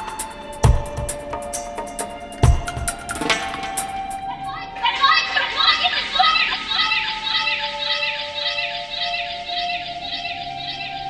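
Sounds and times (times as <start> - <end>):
held synth notes: 0.0 - 11.0
voice-like electronic chirps: 4.5 - 11.0.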